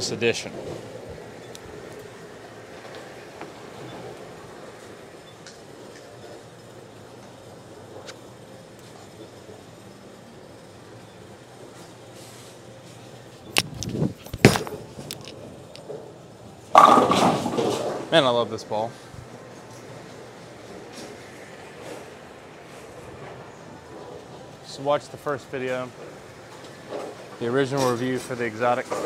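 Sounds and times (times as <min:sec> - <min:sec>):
bowling alley background noise: 0:00.0 - 0:29.0
bowling ball crashing into pins: 0:16.7 - 0:18.1.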